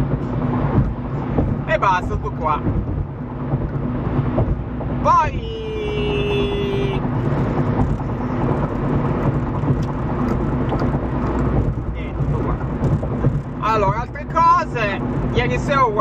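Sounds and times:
car road and engine noise: 0.0 - 16.0
man speaking: 5.0 - 7.0.

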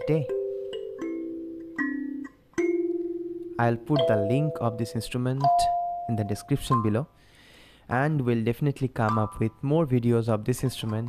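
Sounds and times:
kalimba notes plucked: 0.0 - 7.0.

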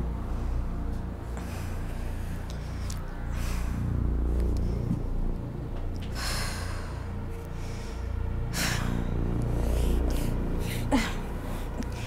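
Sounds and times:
woman groaning in pain: 10.7 - 11.3.

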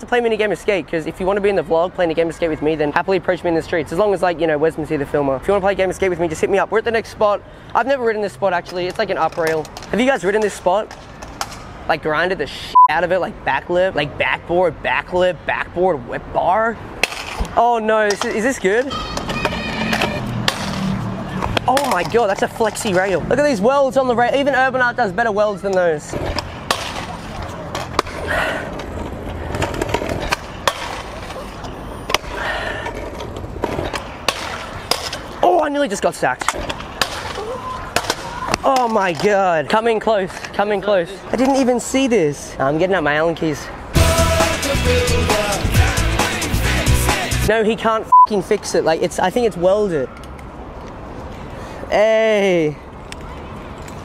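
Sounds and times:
city background noise: 0.0 - 54.0
scooter wheels rolling on bricks: 8.4 - 11.7, 17.0 - 41.9
scooter wheels clacking on joints: 8.5 - 11.7, 17.0 - 41.9.

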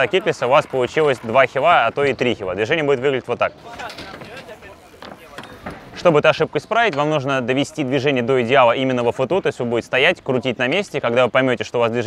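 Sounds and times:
scooter rolling on concrete: 0.0 - 6.2
faint chatter of people: 0.0 - 12.0.

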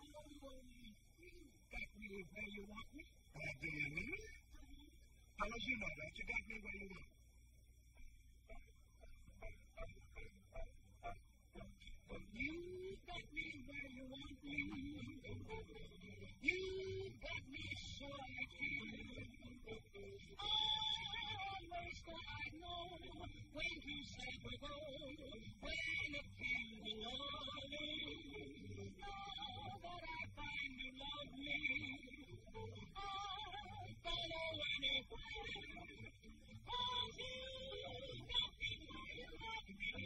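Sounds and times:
steady high-pitched whine: 0.0 - 40.0.

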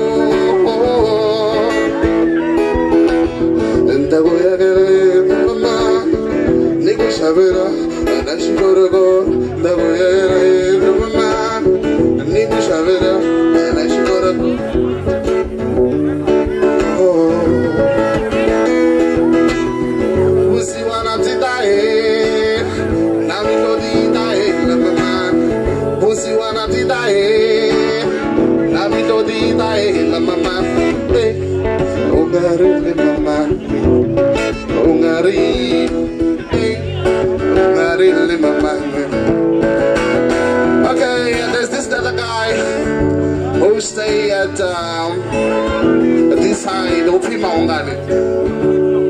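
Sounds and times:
acoustic guitar: 0.0 - 49.0
man singing: 0.0 - 49.0.

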